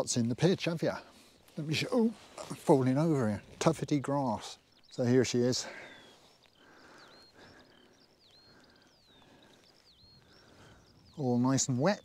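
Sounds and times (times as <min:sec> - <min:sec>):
songbird singing: 0:00.0 - 0:12.0.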